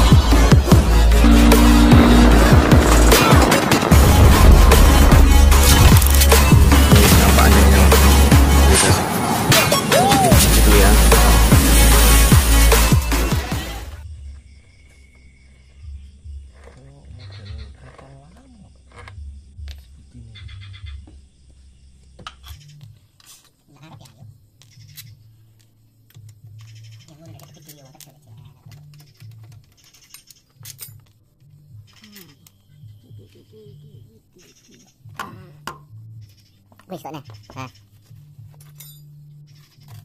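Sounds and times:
low hum: 0.0 - 9.8
intro music: 0.0 - 14.0.

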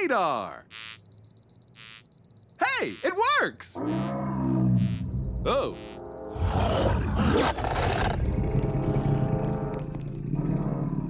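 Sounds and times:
fast-pulsing high-pitched electronic beep: 0.8 - 7.5.

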